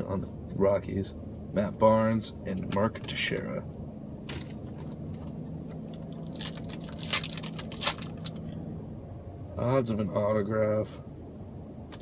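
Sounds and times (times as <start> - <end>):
low hum: 0.0 - 12.0
trading cards rustling: 4.4 - 8.4.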